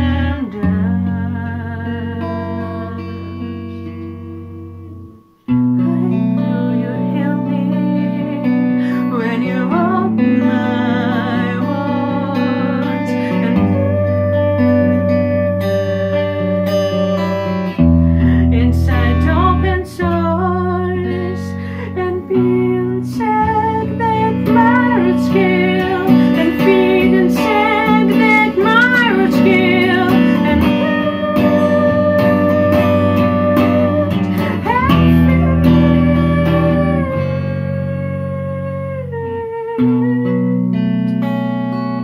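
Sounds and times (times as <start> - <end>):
woman singing: 0.0 - 41.9
electric guitar chords: 0.0 - 42.0.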